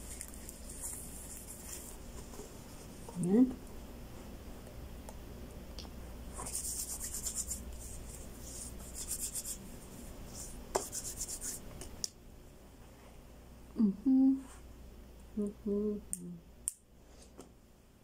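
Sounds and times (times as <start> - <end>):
hands rubbing scratchily: 0.0 - 3.1, 6.3 - 11.7
person humming: 13.7 - 14.6, 15.4 - 16.4.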